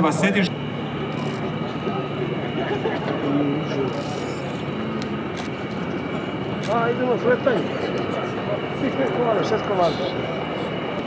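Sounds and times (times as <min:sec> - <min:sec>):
faint voices: 0:00.0 - 0:11.0
propeller plane flying past: 0:00.0 - 0:11.0.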